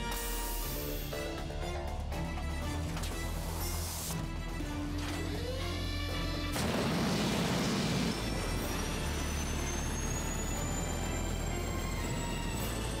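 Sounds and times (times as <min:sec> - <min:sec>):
background music: 0:00.0 - 0:13.0
rocket thruster sound effect: 0:06.5 - 0:13.0
rising high whine: 0:06.6 - 0:13.0.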